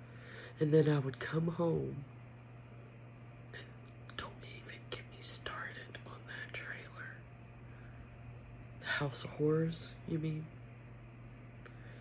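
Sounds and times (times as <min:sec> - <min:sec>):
steady low hum: 0:00.0 - 0:12.0
woman whispering: 0:04.1 - 0:07.3.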